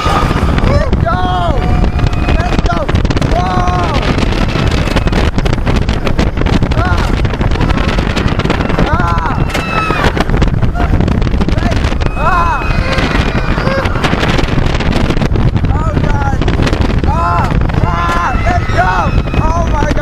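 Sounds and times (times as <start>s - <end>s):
riders screaming: 0.0s - 5.4s, 6.7s - 10.2s, 11.7s - 14.5s, 17.1s - 20.0s
roller coaster rumbling on rails: 0.0s - 20.0s
wind buffeting microphone: 0.0s - 20.0s.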